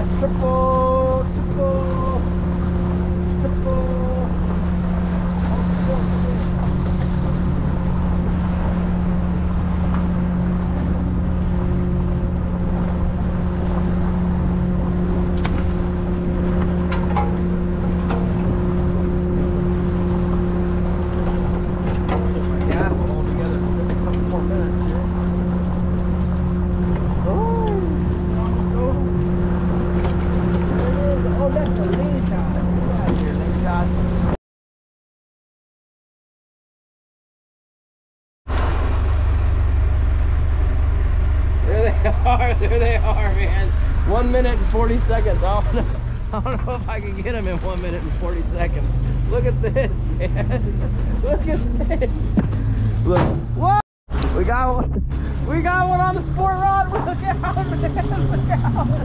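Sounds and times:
boat engine running: 0:00.0 - 0:34.4, 0:38.5 - 0:59.0
water washing past hull: 0:00.0 - 0:34.4, 0:38.5 - 0:59.0.

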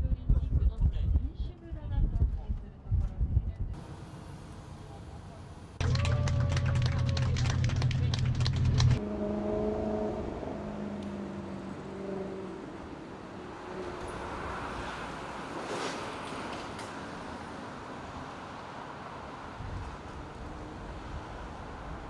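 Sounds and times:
street traffic noise: 0:00.2 - 0:22.0
people clapping hands: 0:05.8 - 0:09.0
loud low rumble: 0:05.8 - 0:09.1.

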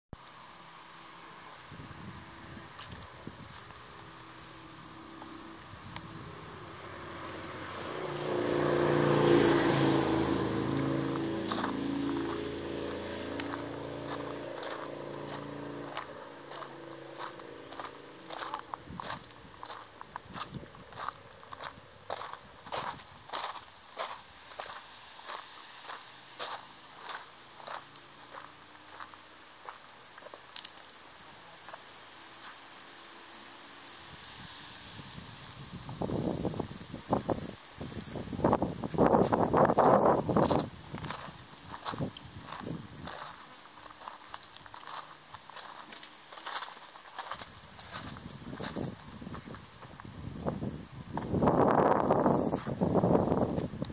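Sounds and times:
motor vehicle passing: 0:01.0 - 0:21.8
footsteps crunching on gravel: 0:02.7 - 0:06.6, 0:09.3 - 0:32.6, 0:38.4 - 0:53.8
crunching and rustling: 0:39.2 - 0:50.1.

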